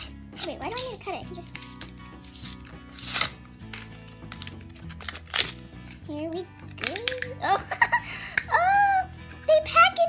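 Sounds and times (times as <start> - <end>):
background music: 0.0 - 10.0
blister pack crinkling: 0.7 - 7.4.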